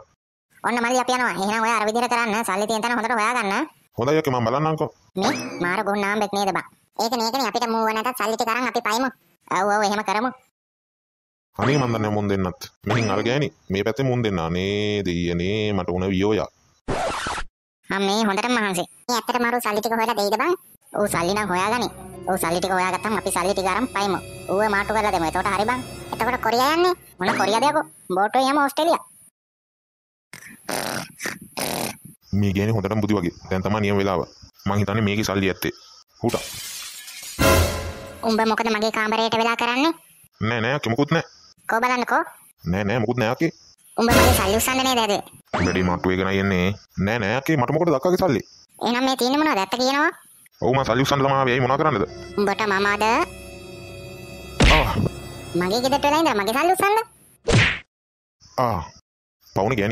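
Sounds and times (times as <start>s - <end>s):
cartoon whack sound effect: 12.9s - 13.2s, 27.2s - 27.6s, 45.5s - 45.9s, 54.6s - 55.1s, 57.4s - 57.9s
cartoon character snoring: 30.4s - 32.1s.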